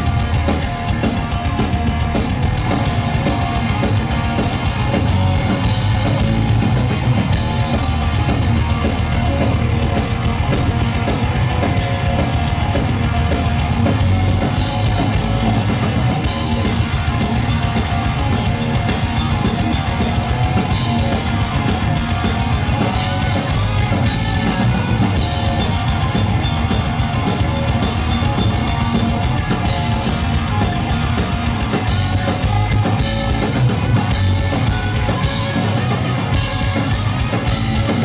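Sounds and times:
bass guitar: 0.0s - 38.0s
distorted electric guitars: 0.0s - 38.0s
drum kit: 0.0s - 38.0s.

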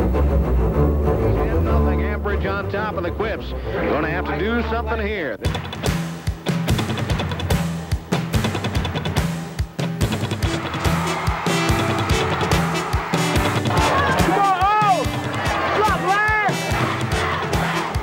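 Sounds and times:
beat and bass line: 4.4s - 18.0s.

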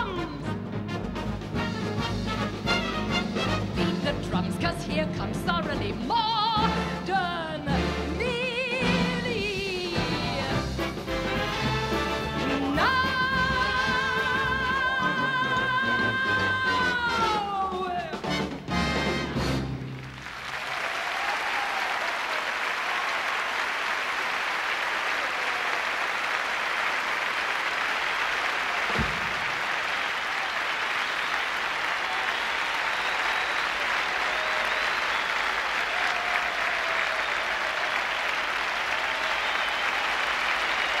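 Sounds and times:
audience applauding: 19.6s - 41.0s.

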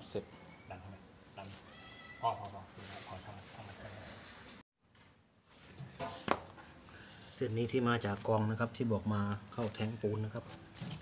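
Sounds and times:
small animal high-pitched call: 1.4s - 2.4s.

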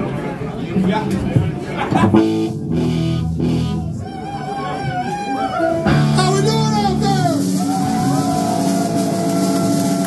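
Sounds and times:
rock band distorted chord: 2.1s - 4.0s, 5.9s - 10.0s.

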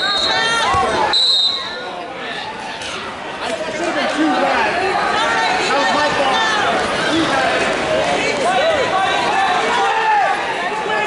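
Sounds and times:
referee's whistle blasts: 0.0s - 1.8s
crowd shouting: 0.0s - 1.9s, 4.0s - 11.0s.

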